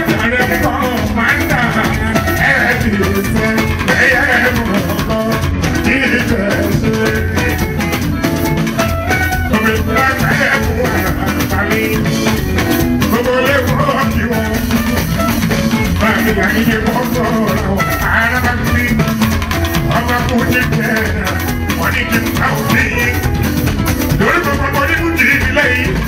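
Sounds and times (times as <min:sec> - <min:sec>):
live band dance groove: 0:00.0 - 0:26.0
man singing: 0:00.0 - 0:26.0.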